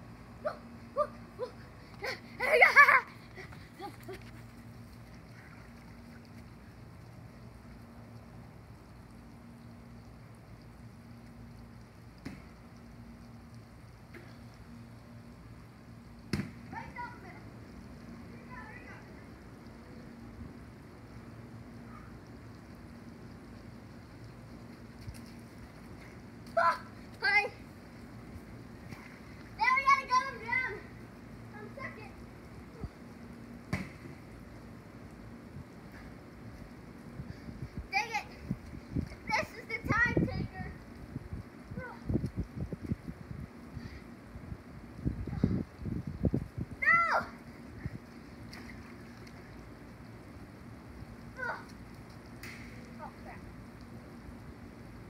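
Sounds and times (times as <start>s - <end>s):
child yelling: 46.8s - 47.4s.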